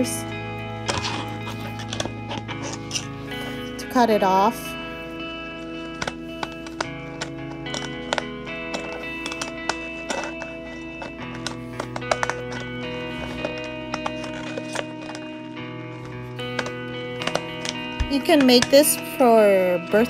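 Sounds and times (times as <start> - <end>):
background music with chords: 0.0 - 20.0
scissors snipping paper: 5.9 - 15.3.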